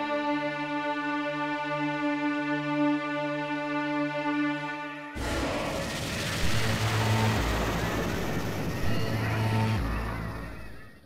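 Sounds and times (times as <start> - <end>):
loud whooshing noise: 5.2 - 10.0
low sustained drone: 5.2 - 11.0.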